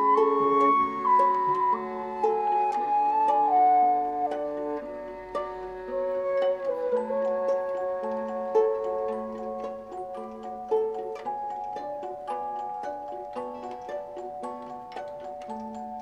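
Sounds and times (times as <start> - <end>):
music box mechanism ticking: 0.0 - 16.0
music box plucked notes: 0.0 - 16.0
wooden flute melody: 0.0 - 16.0.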